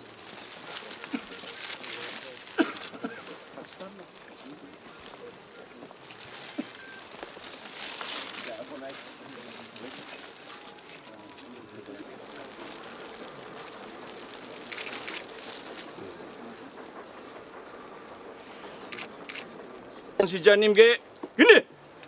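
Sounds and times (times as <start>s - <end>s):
brief rustling: 0.0s - 16.6s
steady outdoor hiss: 0.0s - 22.0s
faint indistinct voices: 0.2s - 20.2s.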